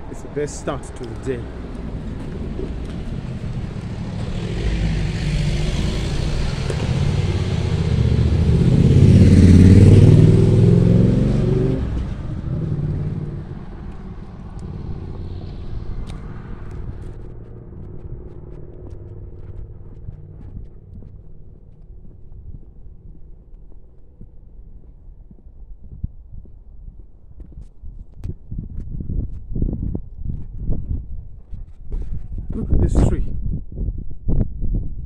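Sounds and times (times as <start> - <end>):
motorcycle passing by: 1.1 - 23.7.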